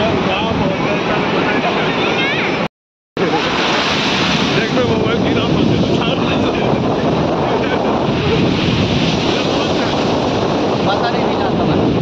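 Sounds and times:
wind buffeting microphone: 0.0s - 2.6s, 3.2s - 12.0s
sea surf breaking: 0.0s - 12.0s.

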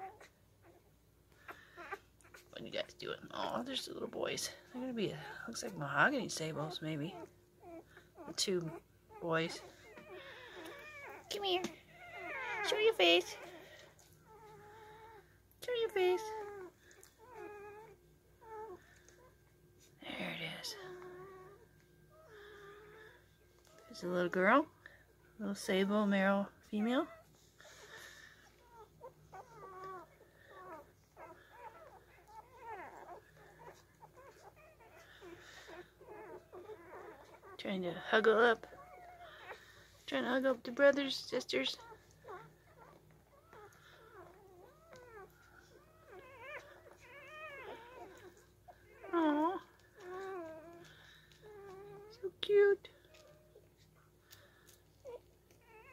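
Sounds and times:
puppy crying with mewing whines: 0.0s - 2.6s, 3.2s - 55.9s.

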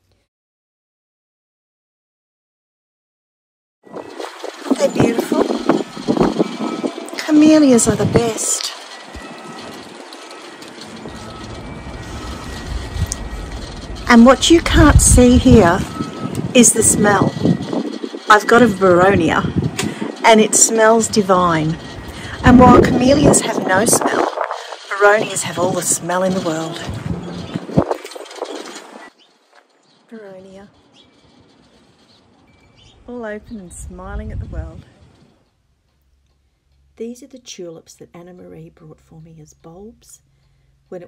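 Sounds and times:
leaves rustling: 3.9s - 18.5s
rumble of distant engines: 3.9s - 41.0s.

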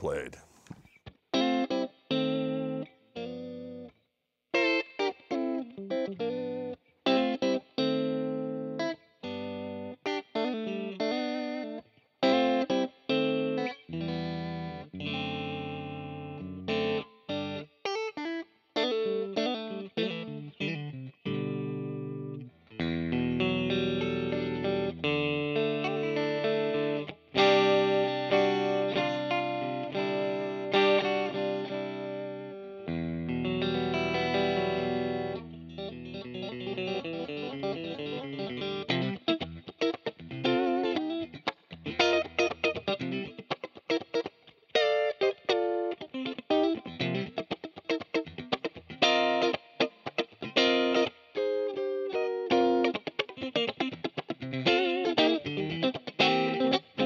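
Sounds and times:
electric guitar through amp: 18.8s - 57.0s.

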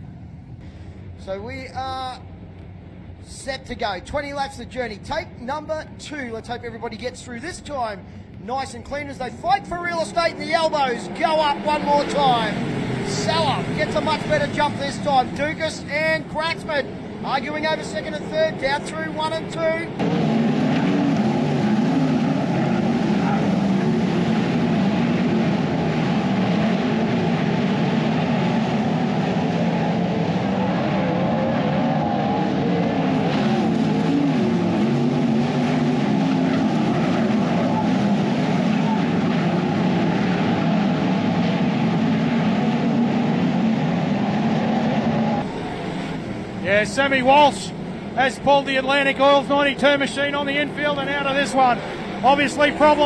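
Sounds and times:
racing car engines: 0.0s - 53.0s.

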